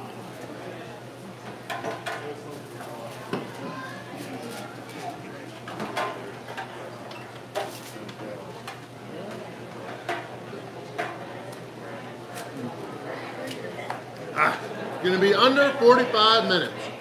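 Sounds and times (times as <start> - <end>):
chatter of people: 0.0 - 17.0.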